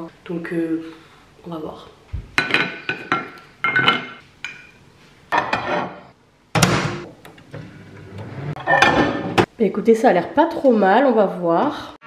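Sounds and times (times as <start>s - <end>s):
dishes clinking and knocking: 2.4s - 7.1s, 8.6s - 9.5s.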